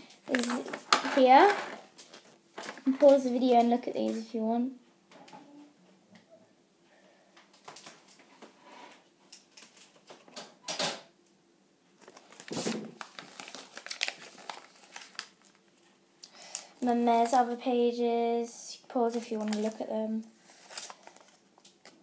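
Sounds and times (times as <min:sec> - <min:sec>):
paper booklet rustling and crinkling: 0:00.2 - 0:04.3, 0:12.0 - 0:17.8, 0:19.0 - 0:22.0.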